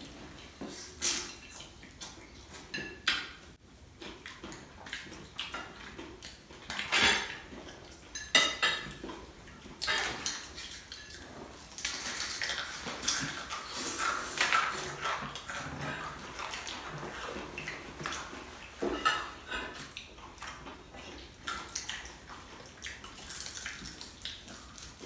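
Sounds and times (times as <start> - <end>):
cups and tableware clattering: 2.7 - 3.4, 6.8 - 7.4, 8.1 - 9.0, 18.8 - 19.9
crispy chicken being chewed: 3.8 - 25.0.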